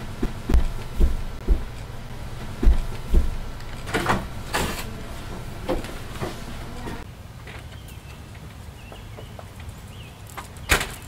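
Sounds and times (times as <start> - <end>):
heavy footsteps on floor: 0.0 - 6.6
scraping rattling sounds: 0.0 - 7.0
wooden door opening: 0.0 - 7.0.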